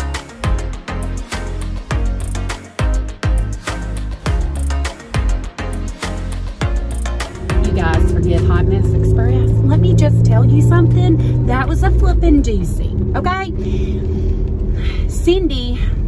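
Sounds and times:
background music: 0:00.0 - 0:14.8
car engine and road rumble: 0:06.2 - 0:16.0
woman talking: 0:07.6 - 0:13.6, 0:15.0 - 0:16.0.

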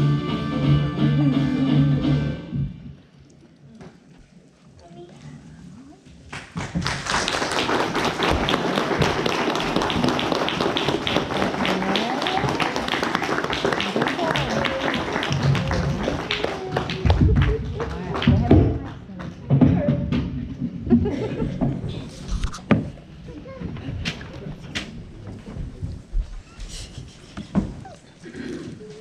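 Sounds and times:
audience applauding: 0:06.3 - 0:19.2.

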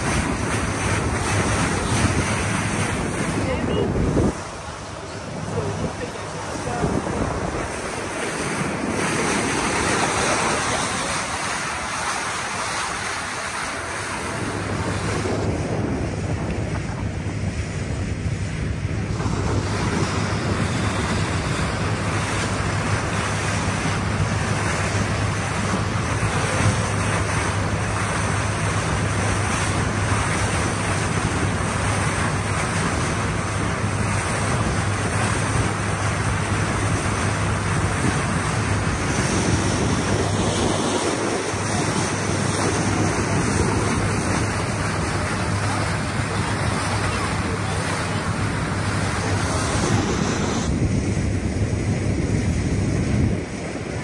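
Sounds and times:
low engine hum: 0:00.0 - 0:54.0
water rushing past hull: 0:00.0 - 0:54.0
wind buffeting microphone: 0:00.0 - 0:54.0.

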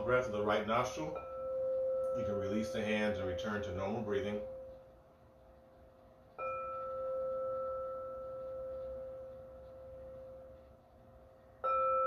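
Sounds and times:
singing bowl ringing: 0:00.0 - 0:05.0, 0:06.4 - 0:12.0.

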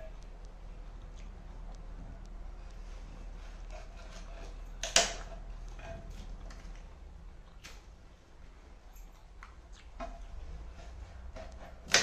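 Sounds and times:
knife scraping coconut shell: 0:03.4 - 0:06.2.

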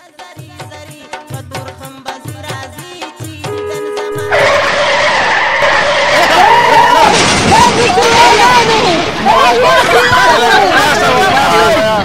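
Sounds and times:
held music note: 0:03.5 - 0:05.1
tyres screeching: 0:04.2 - 0:08.6.

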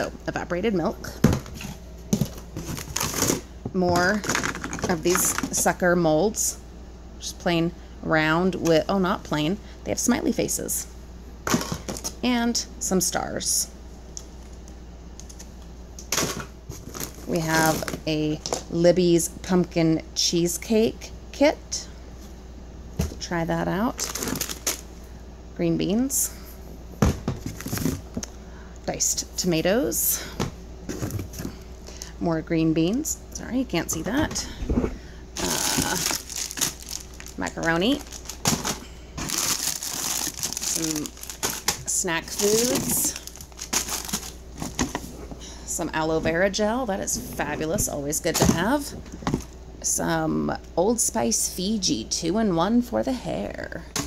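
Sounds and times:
packages rustling: 0:01.3 - 0:05.7, 0:16.1 - 0:18.7, 0:24.0 - 0:24.9, 0:27.3 - 0:28.2, 0:35.4 - 0:45.4.

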